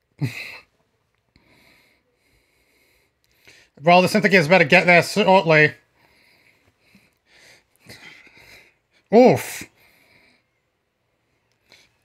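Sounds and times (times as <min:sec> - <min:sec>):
person breathing softly: 0:00.2 - 0:03.8, 0:05.9 - 0:09.1, 0:09.7 - 0:10.7, 0:11.5 - 0:12.0.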